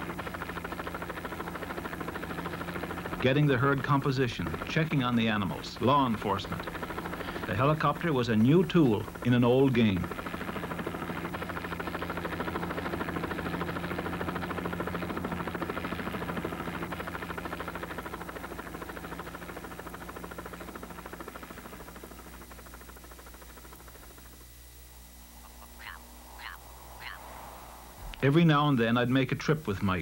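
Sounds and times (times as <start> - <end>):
helicopter rotor beating: 0.0 - 30.0.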